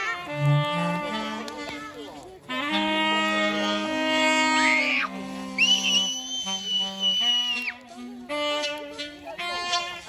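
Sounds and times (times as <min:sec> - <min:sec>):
saxophones holding long notes: 0:00.0 - 0:10.0
bowed double bass: 0:00.2 - 0:01.7.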